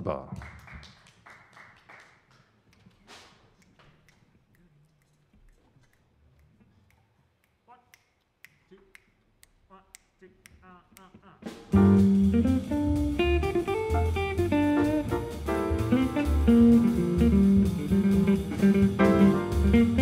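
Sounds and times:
jazz quartet playing: 0:11.4 - 0:20.0.

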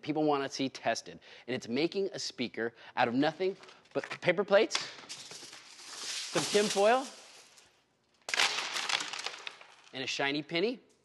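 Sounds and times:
aluminium foil crinkling: 0:05.1 - 0:10.0.

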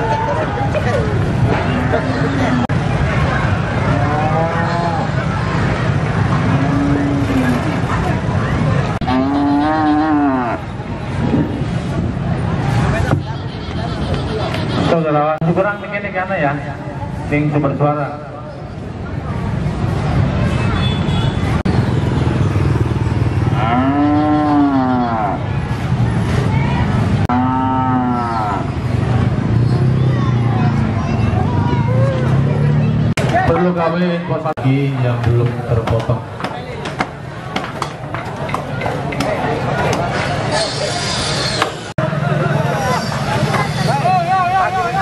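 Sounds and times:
crowd noise: 0:00.0 - 0:45.0
cattle mooing: 0:06.4 - 0:07.8, 0:09.0 - 0:10.7, 0:23.5 - 0:25.4, 0:27.3 - 0:28.8.

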